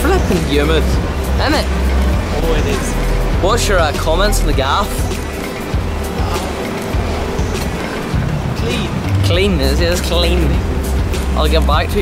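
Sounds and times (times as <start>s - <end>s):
background music: 0.0s - 12.0s
traffic rumble: 0.0s - 12.0s.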